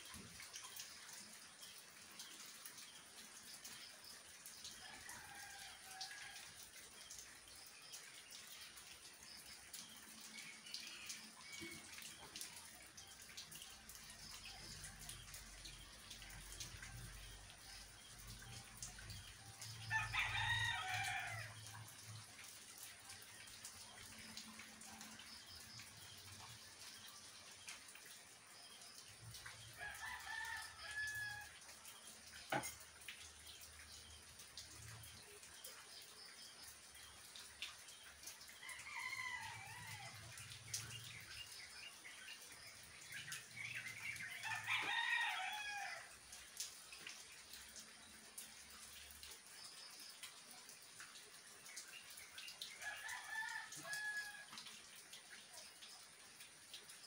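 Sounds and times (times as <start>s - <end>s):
faint steady rain: 0.0s - 57.0s
rooster crowing: 19.9s - 21.6s, 44.4s - 46.1s, 52.8s - 54.5s.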